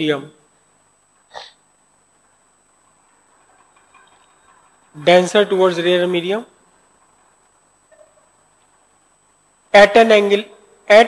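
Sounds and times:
person sniffing: 1.3 - 1.6.

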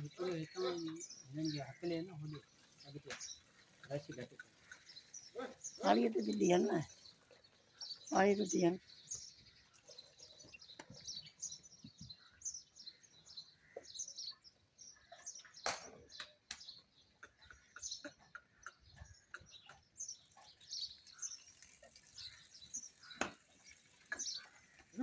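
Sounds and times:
small birds chirping: 0.0 - 25.0.

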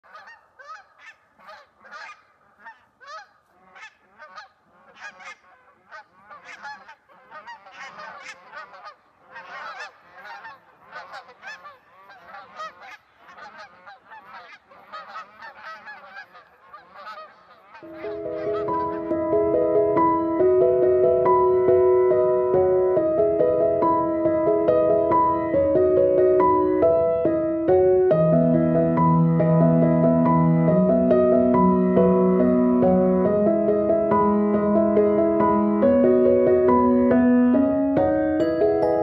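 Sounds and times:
geese honking: 0.0 - 20.1.

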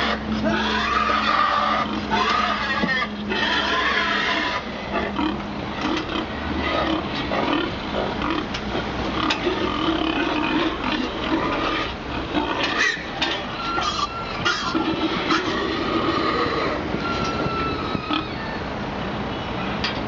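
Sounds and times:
pigs squealing and grunting: 0.0 - 18.6.

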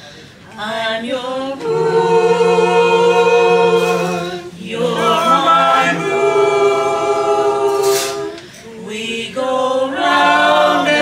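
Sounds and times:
group singing a cappella: 0.6 - 11.0.

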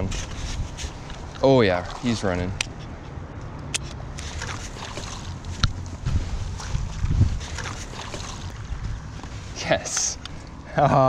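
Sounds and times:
wind buffeting microphone: 0.0 - 3.3, 4.4 - 10.3
water noise: 0.0 - 11.0
heavy rumble: 5.3 - 10.2.

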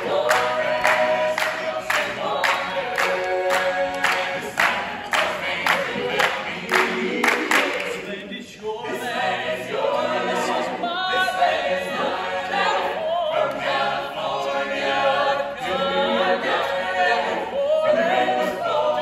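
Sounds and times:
a cappella ensemble singing: 0.0 - 19.0.

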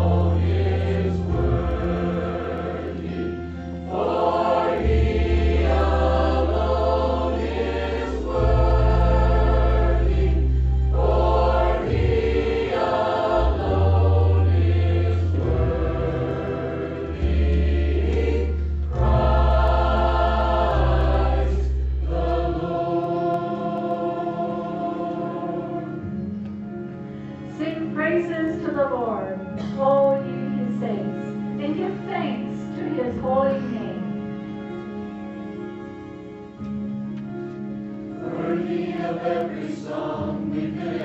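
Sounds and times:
mixed choir singing: 0.0 - 26.2, 38.1 - 41.0.

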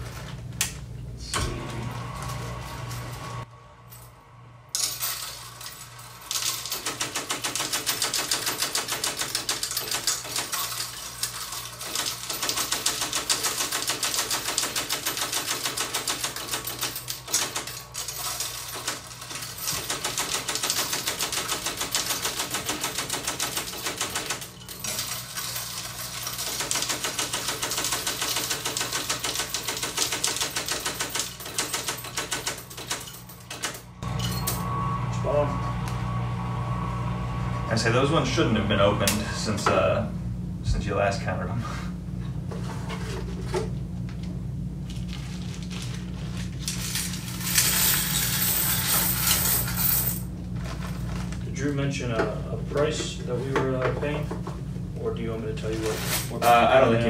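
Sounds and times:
electric coin counter clattering: 4.8 - 34.7, 46.6 - 50.3.

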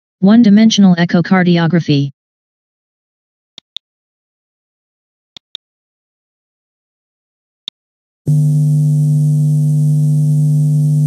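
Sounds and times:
low buzzy electronic hum: 8.3 - 11.0.

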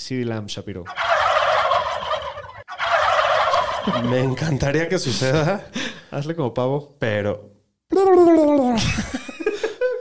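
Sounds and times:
man imitating turkey gobble: 0.9 - 4.4.

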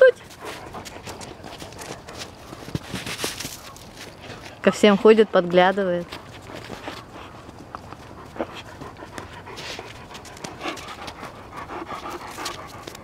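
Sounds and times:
puppy panting and sniffing: 0.0 - 13.0.

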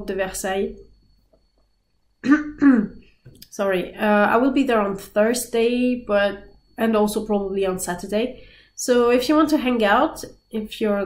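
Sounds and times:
woman clearing her throat: 2.2 - 3.0.

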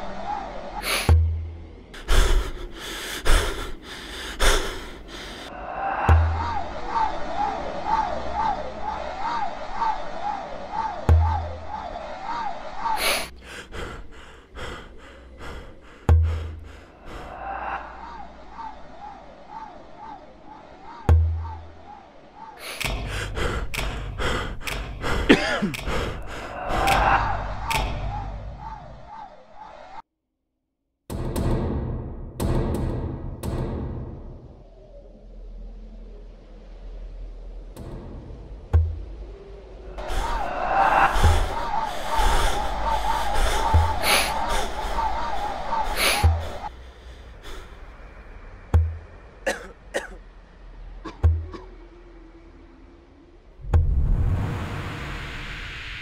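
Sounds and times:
sharp breathy human gasps: 0.8 - 1.2, 2.0 - 6.4, 13.0 - 18.1, 22.6 - 27.9, 40.0 - 47.9
person coughing: 25.1 - 26.2, 49.5 - 50.2.

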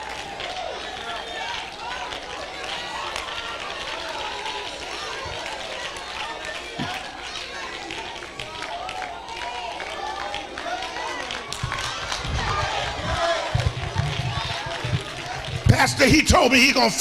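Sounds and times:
congregation voices calling and murmuring: 0.0 - 17.0.

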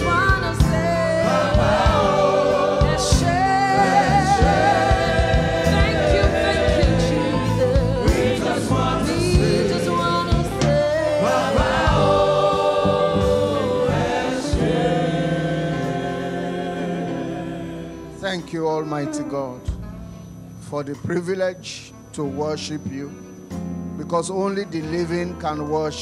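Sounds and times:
choir singing gospel song: 0.0 - 20.4
bass line: 0.0 - 25.8.

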